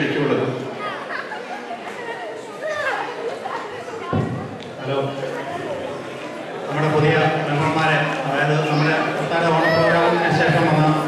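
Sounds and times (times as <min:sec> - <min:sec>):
people talking in a large hall: 0:00.0 - 0:11.0.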